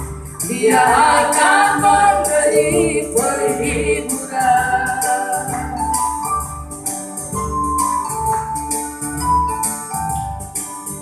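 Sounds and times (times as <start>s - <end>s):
electronic keyboard: 0.0s - 11.0s
women singing gospel: 0.4s - 5.9s.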